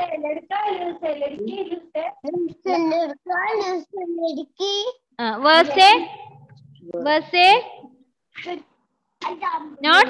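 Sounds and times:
child reciting syllables: 0.0 - 5.0.

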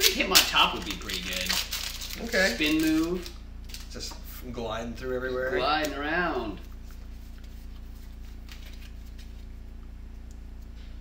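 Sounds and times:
foil wrapper crinkling: 0.0 - 4.0.

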